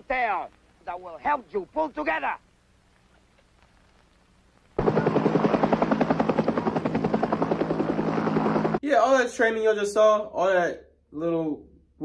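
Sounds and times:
helicopter rotor blades chopping: 4.8 - 8.8.

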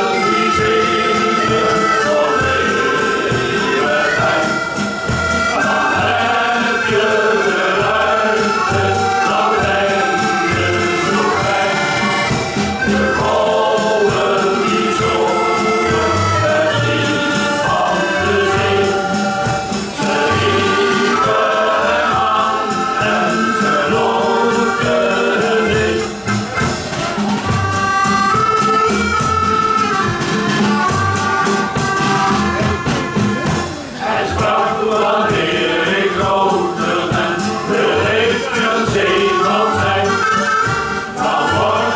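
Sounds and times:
men's choir singing: 0.0 - 26.9, 33.4 - 41.9
accordion: 0.0 - 41.9
drum beat: 0.0 - 41.9.

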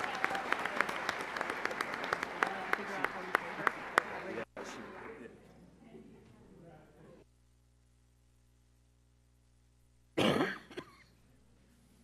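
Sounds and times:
person clearing throat: 10.2 - 11.1.

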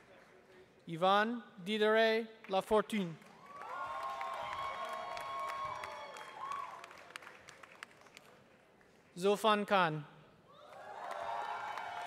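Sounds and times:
audience applause: 3.2 - 8.6, 10.6 - 12.0
people cheering: 3.4 - 7.2, 10.5 - 12.0.

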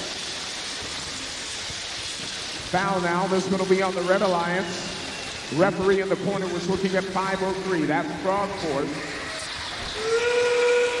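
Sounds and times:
recorded steam train whistle: 10.0 - 11.0.

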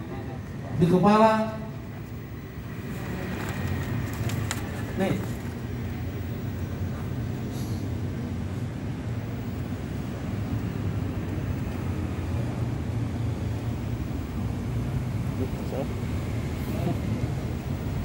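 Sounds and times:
faint voices: 0.0 - 8.0
distant traffic rumble: 0.0 - 18.0.

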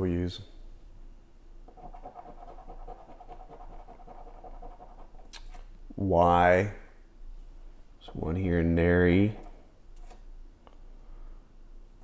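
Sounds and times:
faint steady whine: 0.0 - 12.0
coin scratching a ticket: 1.7 - 5.3.

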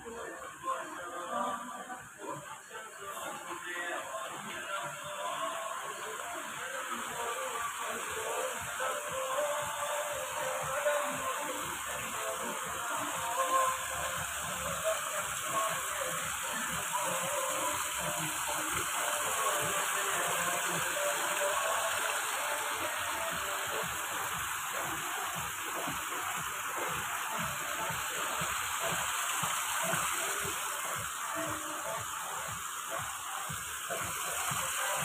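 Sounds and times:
water rushing over weir: 0.0 - 35.0.

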